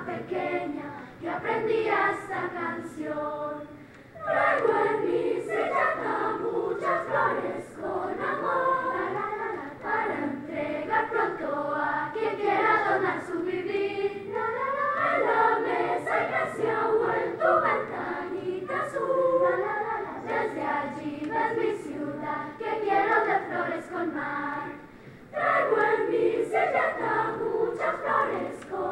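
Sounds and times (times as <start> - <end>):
children's choir singing: 0.0 - 28.9.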